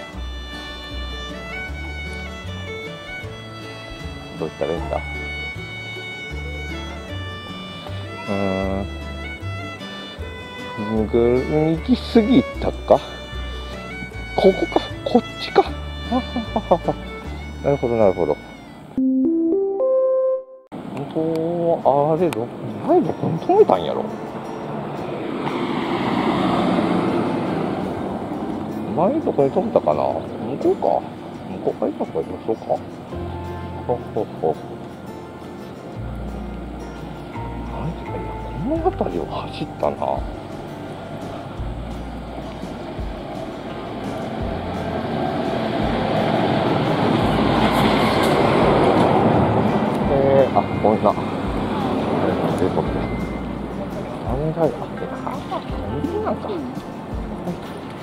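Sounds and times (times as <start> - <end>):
road vehicle passing: 0.0 - 19.0, 20.7 - 58.0.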